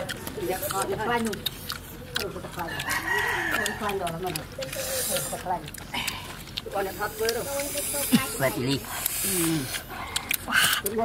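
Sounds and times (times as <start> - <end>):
eating clicks and smacks: 0.0 - 11.0
man hissing air through lips: 8.9 - 9.8.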